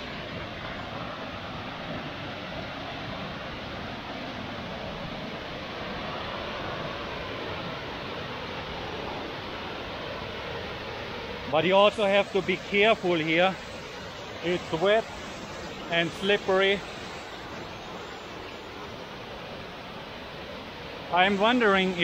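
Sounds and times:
waterfall rushing: 0.0s - 22.0s.

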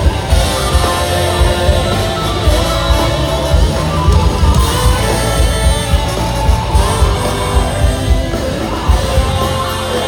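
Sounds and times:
bass drum beat: 0.0s - 10.0s
live band playing rock-funk: 0.0s - 10.0s.

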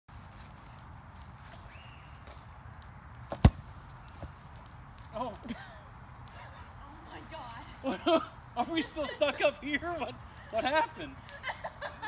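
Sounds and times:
rubber ball thudding on lawn: 3.2s - 4.7s.

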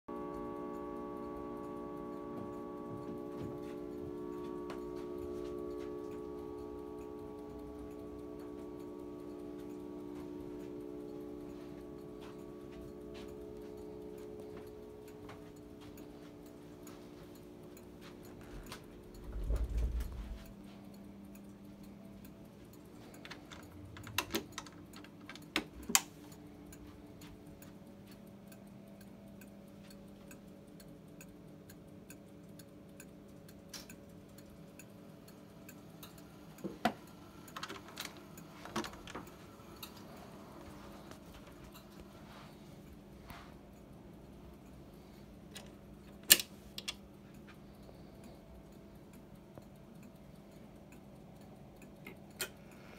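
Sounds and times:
clock chime gongs ringing: 0.1s - 20.8s
clock ticking: 0.1s - 52.9s.

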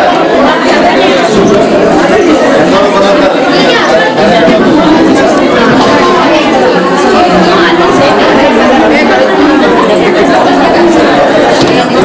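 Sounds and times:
many people chattering: 0.0s - 12.0s.

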